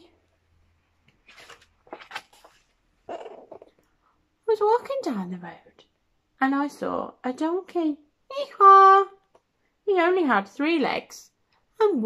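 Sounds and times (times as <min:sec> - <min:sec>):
book pages rustling: 0:00.9 - 0:03.7
woman reading aloud: 0:04.4 - 0:12.0.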